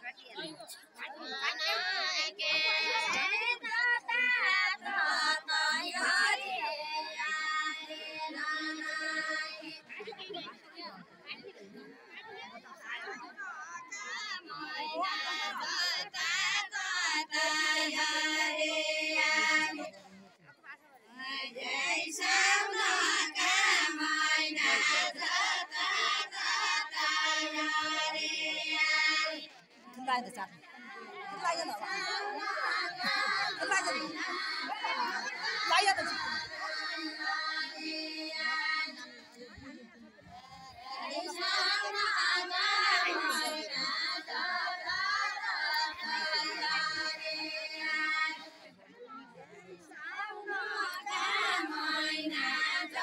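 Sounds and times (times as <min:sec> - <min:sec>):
women singing unaccompanied: 0:01.5 - 0:10.1, 0:14.2 - 0:19.9, 0:21.1 - 0:39.8, 0:40.4 - 0:48.7, 0:50.0 - 0:53.0.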